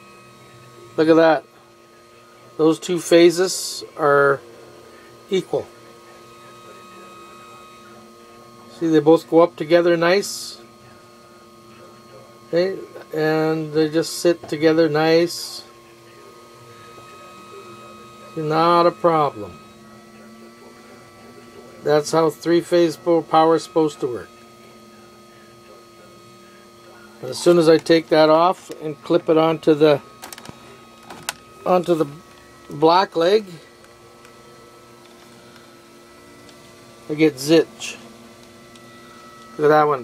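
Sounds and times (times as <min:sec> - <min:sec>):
held tones: 0:12.6 - 0:40.0.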